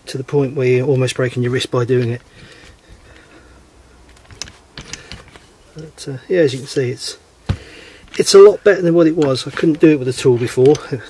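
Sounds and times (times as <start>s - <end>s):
metal clicks and taps: 9.2s - 11.0s.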